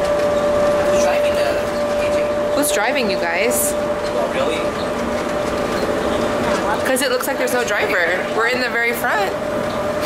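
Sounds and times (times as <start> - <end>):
train rolling hum: 0.0 - 10.0.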